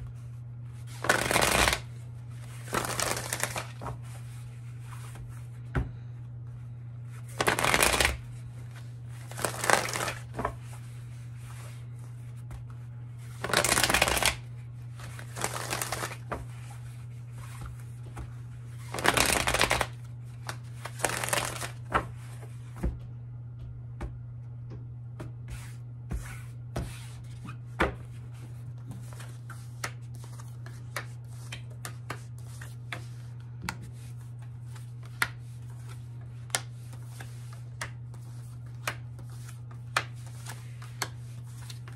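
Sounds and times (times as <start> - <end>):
steady low hum: 0.0 - 41.9
cards being shuffled: 0.8 - 5.2, 7.3 - 10.9, 11.5 - 22.6, 28.8 - 41.9.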